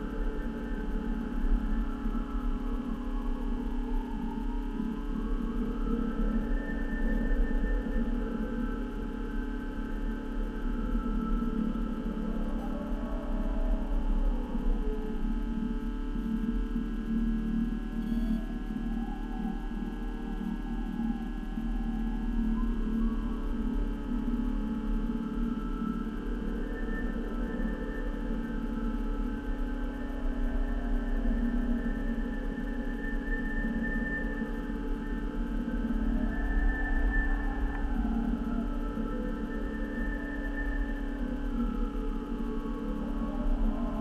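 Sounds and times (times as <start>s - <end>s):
electrical hum and whine: 0.0s - 44.0s.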